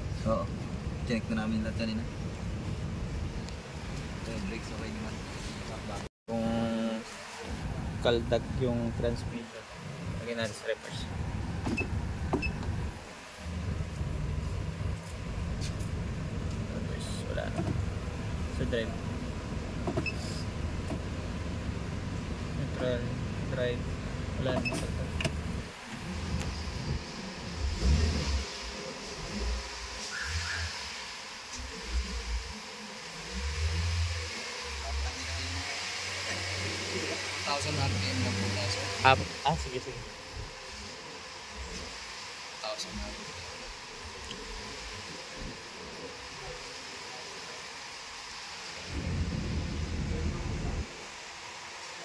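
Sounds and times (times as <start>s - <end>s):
car engine idling: 0.0s - 51.1s
steady hiss: 0.0s - 52.0s.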